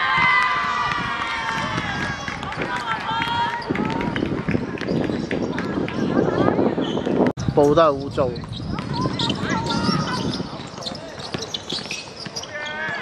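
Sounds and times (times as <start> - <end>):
women shouting and cheering: 0.0 - 4.6
players chatter: 0.5 - 13.0
running footsteps: 8.4 - 13.0.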